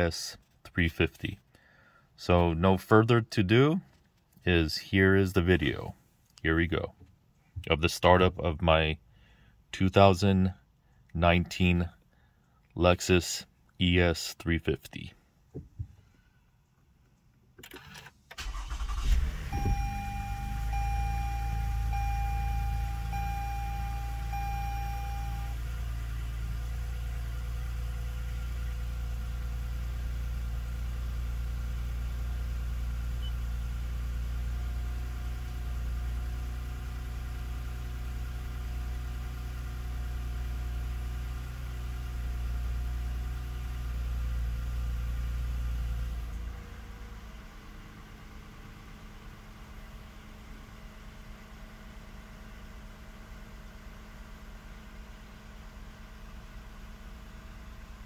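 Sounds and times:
car engine starting and idling: 15.0s - 58.0s
dashboard chime beeping: 19.5s - 25.5s.

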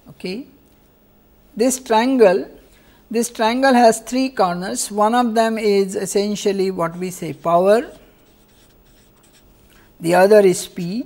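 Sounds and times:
felt-tip marker writing on paper: 7.3s - 9.6s.

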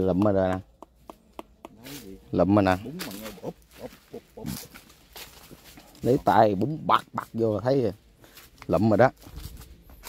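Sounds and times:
person speaking: 0.0s - 8.0s
quiet vocal sounds: 1.6s - 4.8s.

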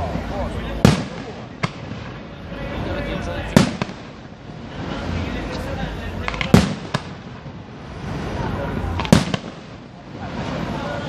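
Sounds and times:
sharp firework cracks: 0.0s - 5.6s, 6.2s - 11.0s
firework shells booming: 0.1s - 5.2s, 6.2s - 11.0s.

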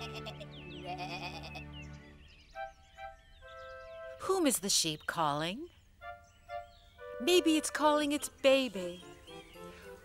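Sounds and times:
sheep bleating: 0.0s - 1.6s
gentle children's music: 0.0s - 5.4s, 6.0s - 10.0s.

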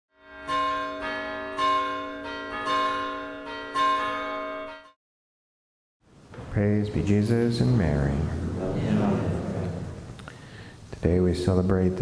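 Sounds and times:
church bells pealing: 0.2s - 5.0s.

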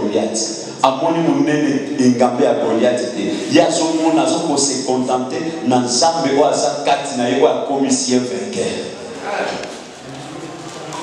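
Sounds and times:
man preaching into a microphone: 0.0s - 11.0s.

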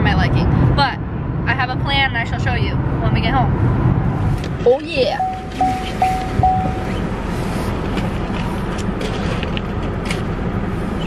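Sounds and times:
car engine idling: 3.2s - 11.0s.

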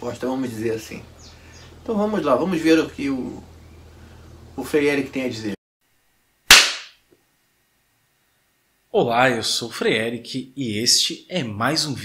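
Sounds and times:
sharp hand clap: 6.5s - 7.0s.

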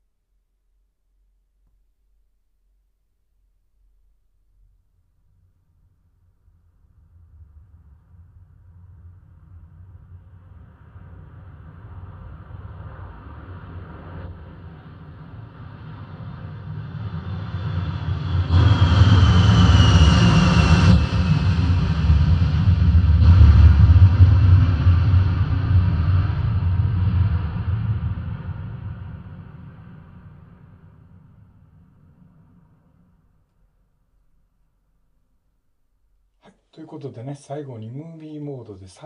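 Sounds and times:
jet engine rumble: 7.4s - 33.1s
whine sliding down in pitch: 15.6s - 33.2s.

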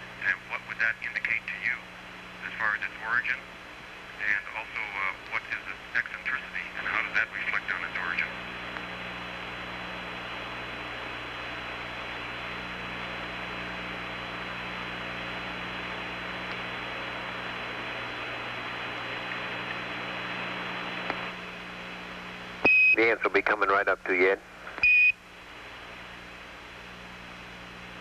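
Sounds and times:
radio channel hiss: 0.0s - 24.8s
low electrical hum: 0.0s - 28.0s
person speaking over radio: 0.2s - 1.8s, 2.4s - 3.4s, 4.2s - 8.4s, 23.0s - 24.4s.

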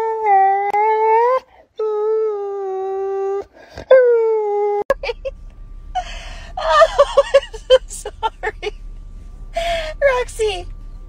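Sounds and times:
young dog whining howl: 0.0s - 5.0s.

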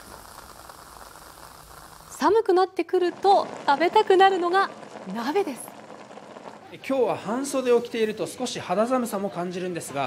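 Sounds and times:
rain falling: 0.0s - 8.3s.

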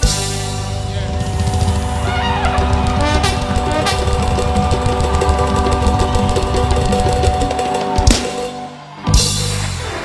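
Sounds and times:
heavy bass: 0.0s - 8.4s
drum kit: 0.0s - 10.0s
praise and worship band: 0.0s - 10.0s.

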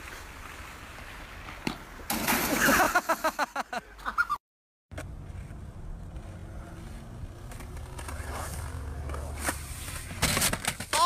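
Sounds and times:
person laughing loudly: 2.5s - 4.4s.

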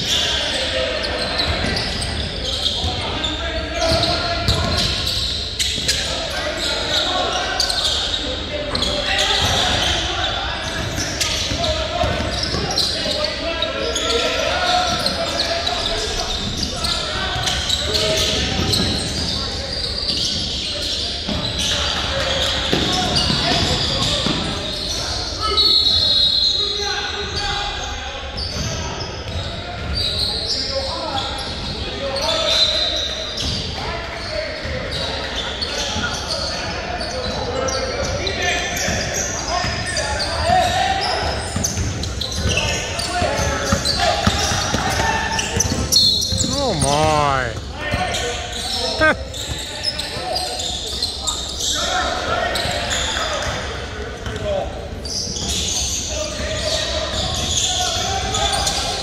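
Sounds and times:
shoe squeaks: 0.0s - 59.0s
indistinct voices: 46.4s - 47.6s.

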